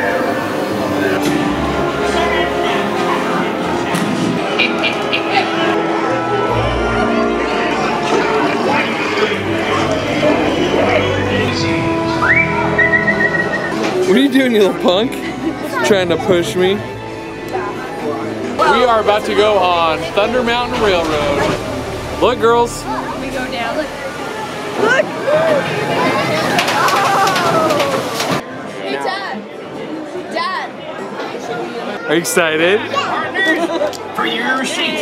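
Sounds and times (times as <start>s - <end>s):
background music: 0.0s - 28.1s
train rushing past: 0.0s - 28.5s
person whistling: 12.2s - 13.8s
riders yelling: 24.8s - 28.2s.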